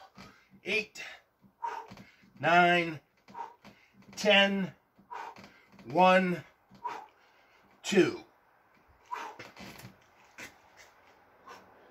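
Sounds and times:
man breathing strained: 0.0s - 2.4s, 3.3s - 4.2s, 5.0s - 5.8s, 6.7s - 7.8s, 9.0s - 9.8s, 11.4s - 11.9s.

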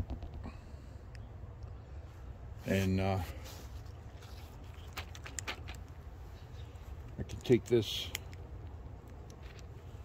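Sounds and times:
low background hum: 0.0s - 10.0s
carabiner clicks: 7.1s - 9.7s.

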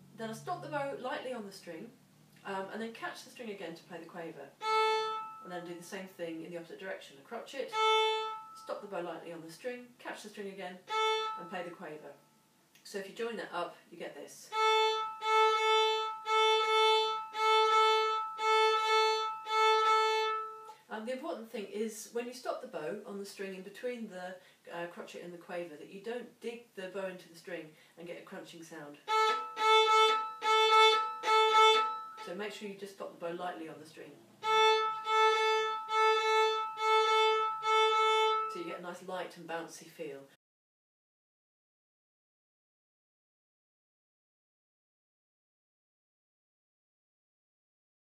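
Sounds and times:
violin bow strokes: 4.6s - 5.9s, 7.7s - 8.8s, 10.9s - 12.3s, 14.5s - 20.8s, 29.0s - 32.4s, 34.4s - 38.7s.

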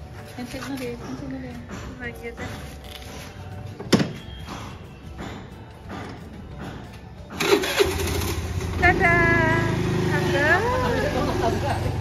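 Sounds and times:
scooter engine starting and idling: 7.3s - 12.0s.

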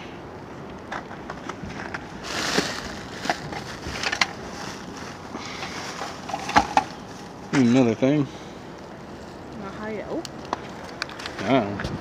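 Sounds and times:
items clattering: 0.9s - 7.2s
plastic bags rustling: 1.8s - 7.4s.

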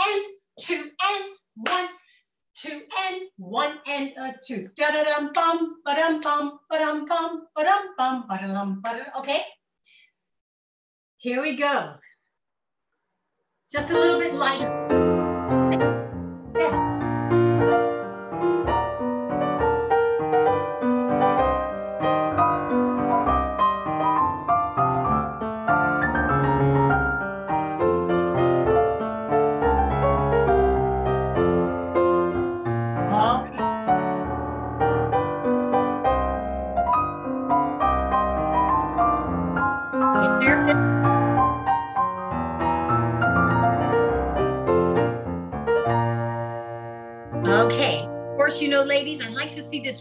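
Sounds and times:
piano dance music: 13.7s - 50.0s.

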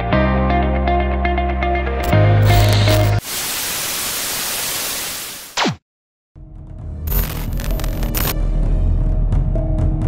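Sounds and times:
television static hiss: 3.3s - 5.4s.

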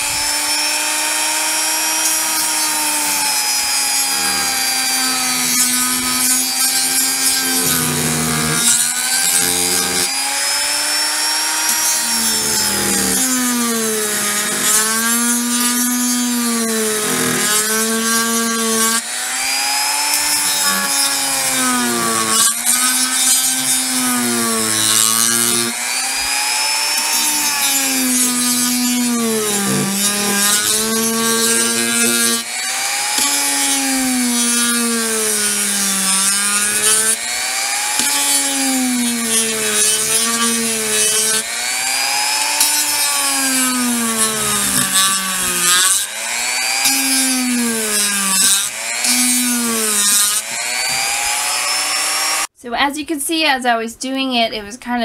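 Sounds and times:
rotary tool motor whine: 0.0s - 52.5s
sanding drum grinding plastic: 1.5s - 10.3s, 11.6s - 51.8s.

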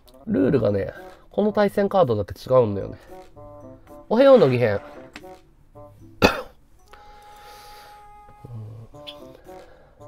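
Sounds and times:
quiet background music: 0.0s - 10.0s
person coughing: 6.2s - 6.6s.

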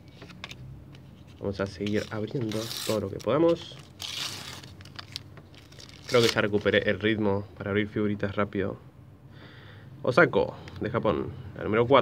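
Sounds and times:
foil packet tearing and crinkling: 1.7s - 6.7s.

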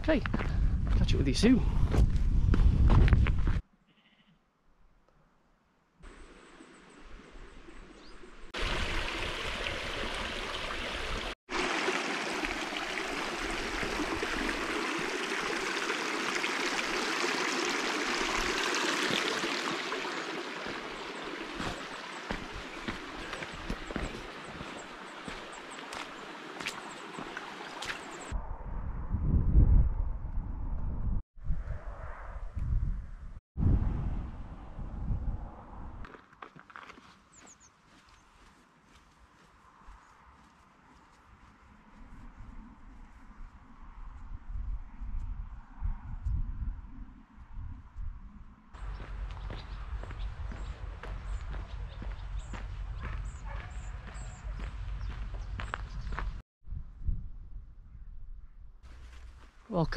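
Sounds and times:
wind gusts buffeting microphone: 0.0s - 3.6s, 28.2s - 36.0s, 41.9s - 58.1s
stream rushing over stones: 8.6s - 28.3s.

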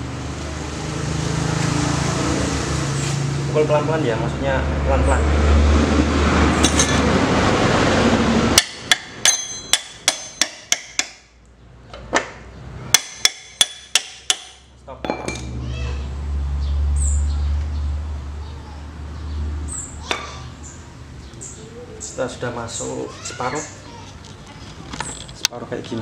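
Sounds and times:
hammer tapping on metal: 8.6s - 11.2s.

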